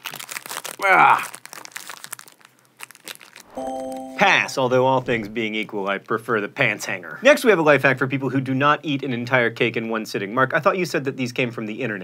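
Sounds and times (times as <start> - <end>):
plastic snack bag crinkling: 0.0 - 3.6
held musical chord: 3.5 - 5.4.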